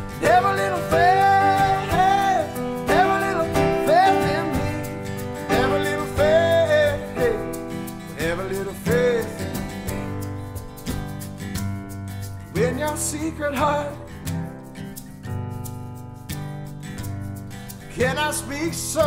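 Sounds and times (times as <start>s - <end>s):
strummed acoustic guitar: 0.0s - 19.0s
person singing long held notes: 0.2s - 4.8s.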